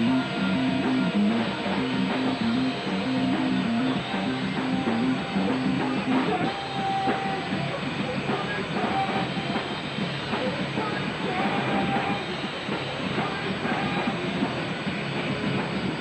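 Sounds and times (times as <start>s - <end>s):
bass: 0.0s - 16.0s
distorted guitars: 0.0s - 16.0s
drums: 0.0s - 16.0s.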